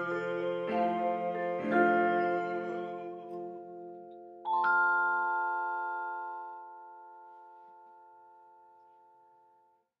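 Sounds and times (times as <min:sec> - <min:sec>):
vibraphone chord ringing: 0:01.7 - 0:08.6.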